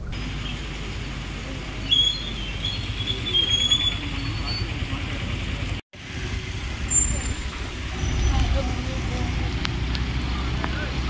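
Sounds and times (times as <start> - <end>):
bus engine idling: 0.0 - 11.0.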